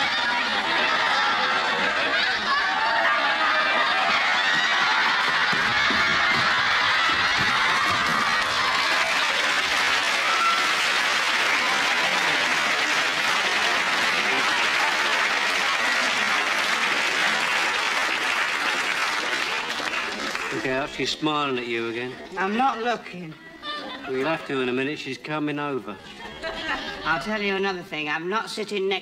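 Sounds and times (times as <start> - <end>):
studio audience laughing: 0.0 - 7.2, 11.1 - 20.7, 26.0 - 27.2
audience clapping: 0.0 - 21.2.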